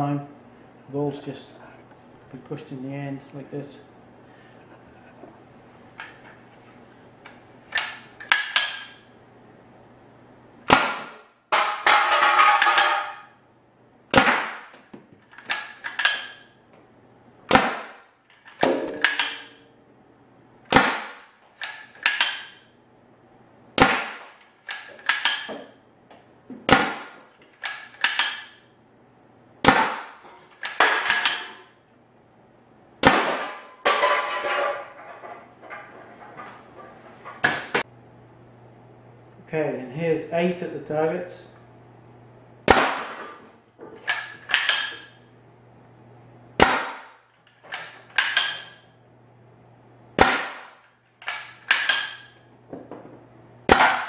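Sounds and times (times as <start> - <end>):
air launcher firing cracks: 10.7 - 11.8, 14.1 - 14.7, 20.7 - 21.2, 23.8 - 24.4, 33.0 - 33.7, 42.6 - 43.2, 46.6 - 47.2, 50.2 - 50.8
clattering rattle: 33.9 - 37.8.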